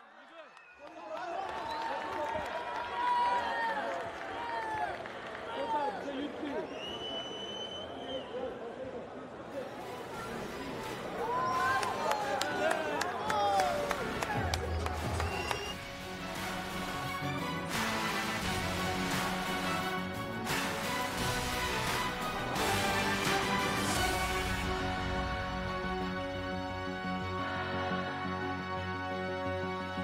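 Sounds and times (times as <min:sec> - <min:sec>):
crowd cheering and shouting: 0:00.0 - 0:06.2, 0:10.3 - 0:15.8
music: 0:10.0 - 0:30.0.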